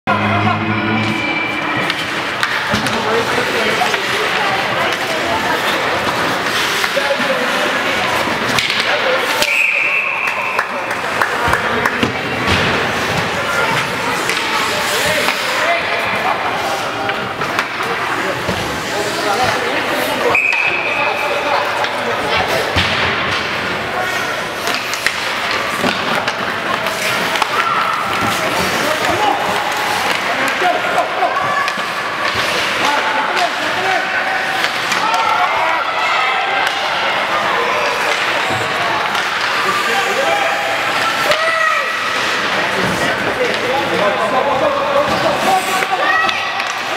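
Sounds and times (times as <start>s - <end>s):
spectators' voices: 0.0s - 46.9s
hockey sticks and puck clacking: 1.8s - 46.9s
referee whistle blasts: 9.4s - 10.4s, 20.3s - 20.9s.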